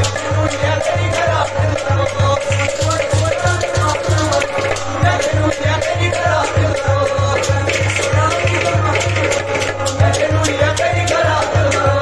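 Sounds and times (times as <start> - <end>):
man singing: 0.0 - 12.0.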